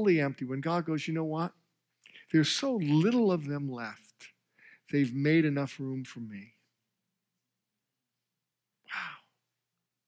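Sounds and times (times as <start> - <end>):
man sighing: 8.9 - 9.4.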